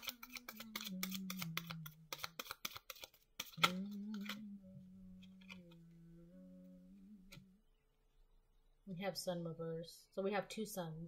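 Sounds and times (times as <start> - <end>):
card deck clicks: 0.1 - 4.4
woman humming: 0.2 - 2.1, 3.6 - 7.6.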